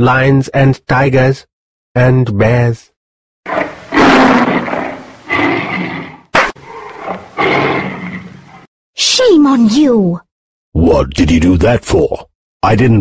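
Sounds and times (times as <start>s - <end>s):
cartoon lion roaring: 3.5s - 8.7s
sharp slap: 6.3s - 6.6s.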